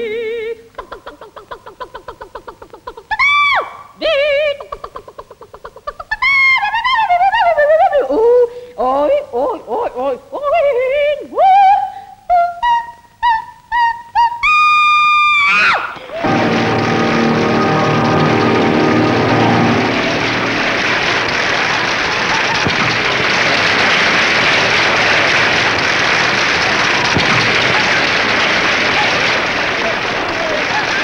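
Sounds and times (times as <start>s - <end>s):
soprano singing with vibrato: 0.0s - 0.7s, 3.0s - 4.9s, 6.1s - 15.4s
applause: 16.0s - 31.0s.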